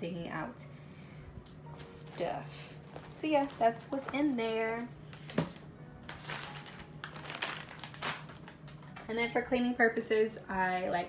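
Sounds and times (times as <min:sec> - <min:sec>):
rustling and crinkling: 0:02.8 - 0:09.0.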